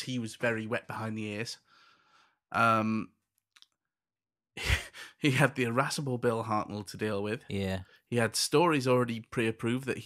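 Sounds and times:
man speaking: 0.0s - 1.6s, 2.5s - 3.1s, 4.6s - 10.0s.

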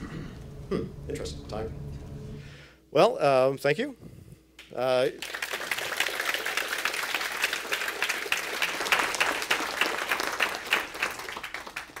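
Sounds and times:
audience applauding: 5.1s - 12.0s.

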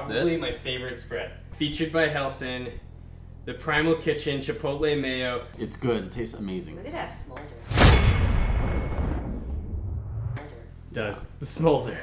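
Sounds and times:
low boom rumble: 7.8s - 10.4s.

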